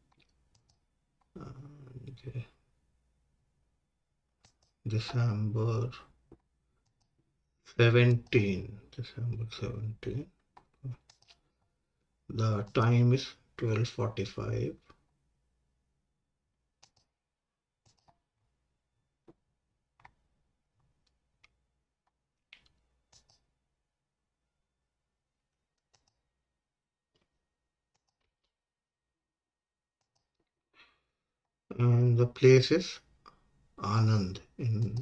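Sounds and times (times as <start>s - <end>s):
keyboard and mouse clicks: 0.0s - 1.3s, 4.4s - 5.2s, 6.3s - 7.2s, 10.4s - 11.4s, 16.8s - 17.2s, 17.8s - 18.3s, 20.0s - 20.2s, 20.8s - 23.5s, 25.7s - 26.3s, 27.9s - 28.5s, 30.0s - 30.5s, 34.7s - 35.0s
low hum of a voice: 1.4s - 2.6s.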